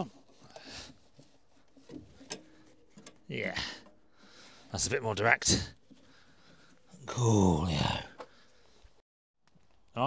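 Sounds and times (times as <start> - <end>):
ducting hose rubbing and rustling: 0.0 - 9.0.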